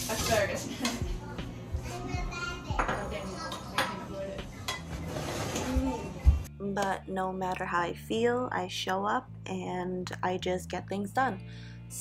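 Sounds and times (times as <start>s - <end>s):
cutlery and dishes clinking: 2.8s - 6.2s.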